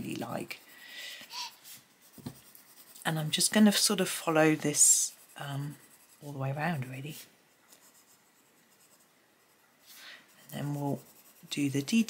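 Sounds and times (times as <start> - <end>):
coloured pencil scratching on paper: 0.0 - 12.0.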